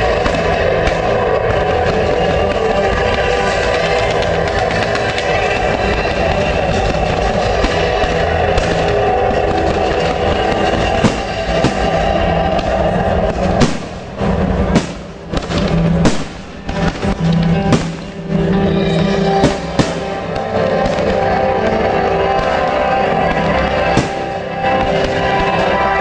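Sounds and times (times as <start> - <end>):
firework bangs: 0.0 - 26.0
loud music: 0.0 - 26.0.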